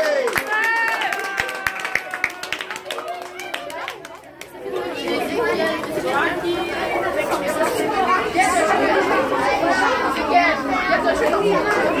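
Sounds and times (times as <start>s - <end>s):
overlapping chatter of people: 0.0s - 12.0s.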